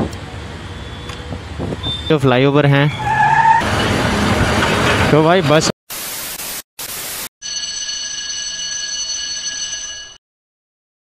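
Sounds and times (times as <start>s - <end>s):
tyres skidding: 0.2s - 5.7s.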